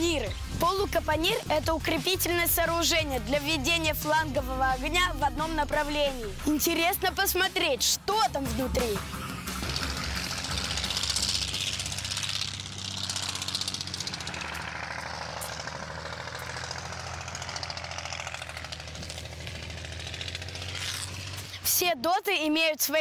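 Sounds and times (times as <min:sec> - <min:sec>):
motor running with rattle and hiss: 0:09.1 - 0:21.6.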